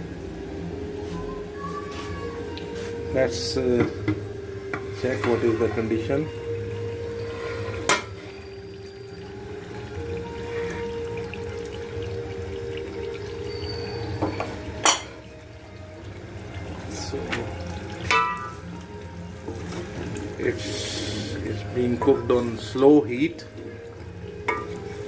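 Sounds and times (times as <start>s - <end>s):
metal pot lid knocking: 14.2s - 15.2s, 18.1s - 18.6s, 24.5s - 24.8s.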